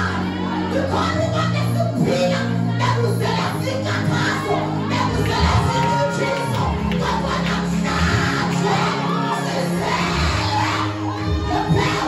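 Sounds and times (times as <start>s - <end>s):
congregation singing and shouting: 0.0s - 12.0s.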